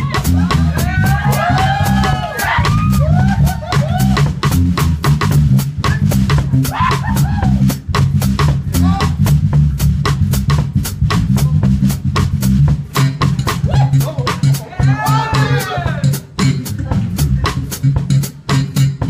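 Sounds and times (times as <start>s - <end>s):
drum kit hits: 0.0s - 19.0s
electric bass groove: 0.0s - 19.0s.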